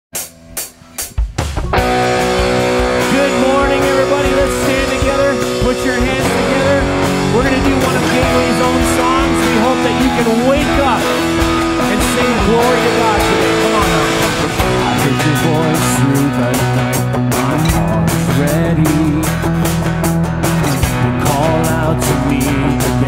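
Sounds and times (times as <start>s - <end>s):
drums: 0.0s - 23.0s
acoustic guitar: 1.7s - 23.0s
man singing: 2.6s - 23.0s.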